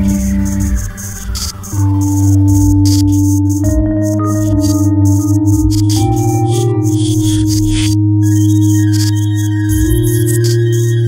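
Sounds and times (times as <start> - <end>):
held high synth tone: 0.0 - 11.0
low synthesizer drone: 0.0 - 11.0.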